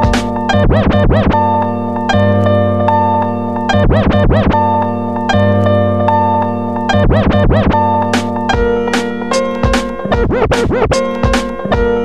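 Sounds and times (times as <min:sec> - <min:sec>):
turntable scratching: 0:00.0 - 0:05.4, 0:06.1 - 0:12.0
lo-fi hip hop instrumental: 0:00.0 - 0:12.0.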